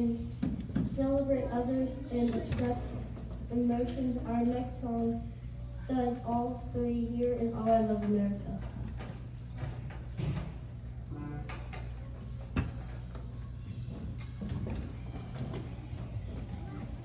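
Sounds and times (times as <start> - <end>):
steady low hum: 0.0 - 17.0
children shuffling: 10.9 - 17.0
low voices: 11.0 - 17.0.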